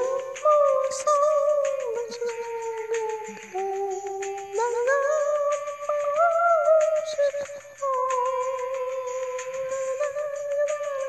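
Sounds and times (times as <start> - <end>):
light ticking percussion: 0.0 - 11.0.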